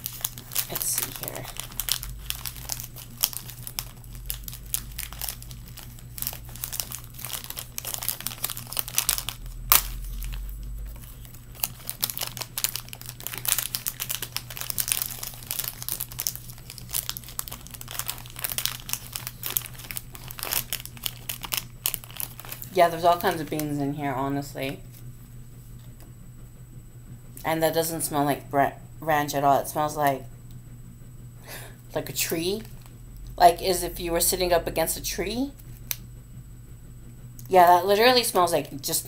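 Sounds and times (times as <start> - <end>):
plastic snack pouch crinkling: 0.0 - 23.8.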